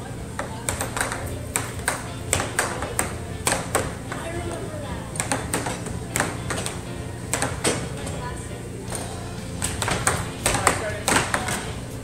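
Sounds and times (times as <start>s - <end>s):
air hockey puck clacking: 0.0s - 8.3s, 8.9s - 12.0s.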